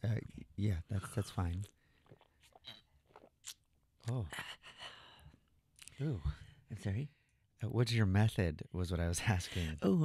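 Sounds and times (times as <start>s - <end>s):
man speaking: 0.0s - 1.7s, 6.0s - 9.9s
man sipping and swallowing: 1.0s - 4.2s.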